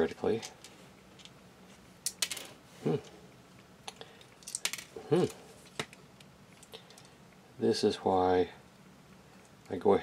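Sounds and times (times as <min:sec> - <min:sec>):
man murmuring hmm: 0:02.8 - 0:03.2, 0:05.0 - 0:05.4.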